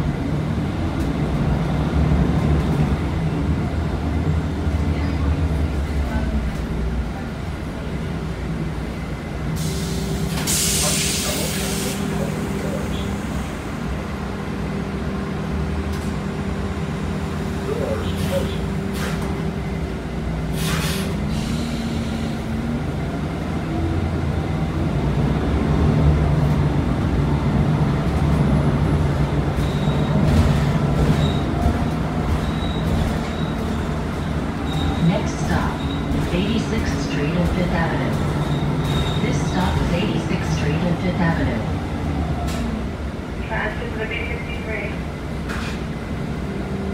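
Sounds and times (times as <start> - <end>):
bus drivetrain drone: 0.0 - 43.5.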